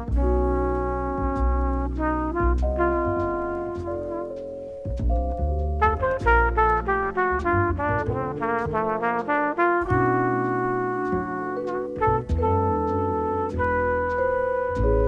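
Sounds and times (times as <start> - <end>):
trumpet playing jazz: 0.0 - 15.0
upright bass: 0.0 - 15.0.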